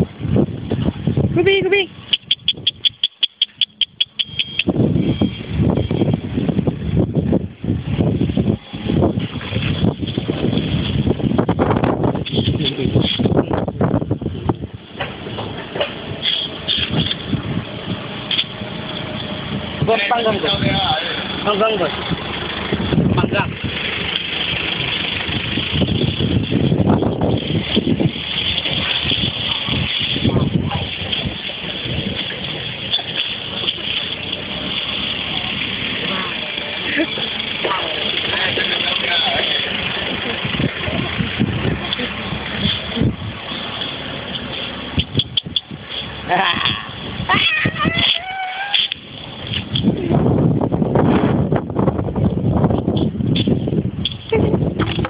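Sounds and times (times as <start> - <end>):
vehicle noise: 0.0 - 55.0
people talking: 1.4 - 1.9, 12.3 - 13.6, 19.8 - 22.0, 23.0 - 23.6, 29.0 - 43.2, 46.2 - 49.0.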